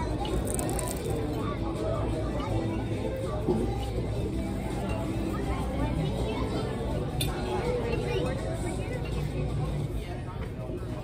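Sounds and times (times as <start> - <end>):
murmur of diners' voices: 0.0 - 11.0.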